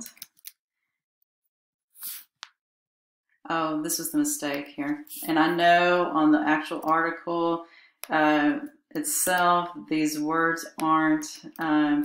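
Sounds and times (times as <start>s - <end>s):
short hiss: 2.0s - 2.3s.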